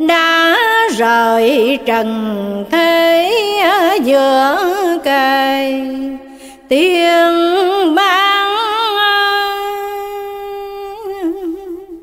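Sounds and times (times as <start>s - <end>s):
person chanting verse: 0.0s - 12.0s.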